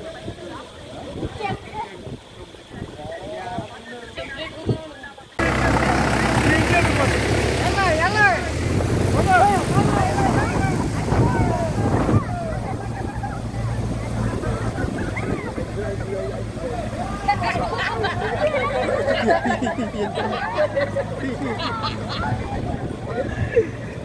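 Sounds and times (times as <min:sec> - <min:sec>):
people calling and talking: 0:00.0 - 0:24.0
tractor diesel engine running: 0:05.4 - 0:23.1.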